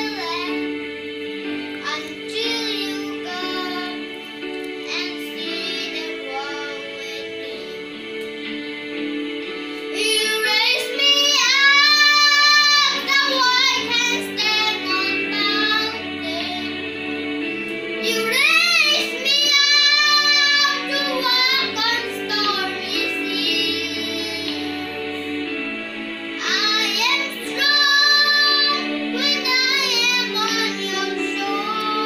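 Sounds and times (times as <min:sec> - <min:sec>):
young boy singing: 0:00.0 - 0:00.6, 0:01.8 - 0:04.1, 0:04.9 - 0:07.8, 0:09.9 - 0:16.8, 0:18.0 - 0:24.9, 0:26.4 - 0:32.0.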